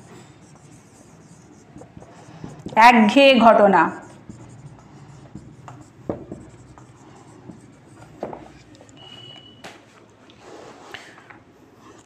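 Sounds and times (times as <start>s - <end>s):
faint writing sounds: 0.0s - 12.0s.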